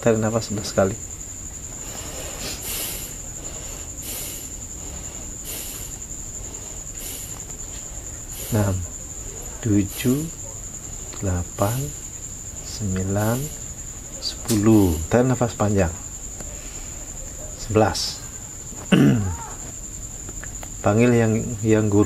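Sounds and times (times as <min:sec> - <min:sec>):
crickets chirping: 0:00.0 - 0:22.0
person breathing forcefully: 0:01.0 - 0:14.1.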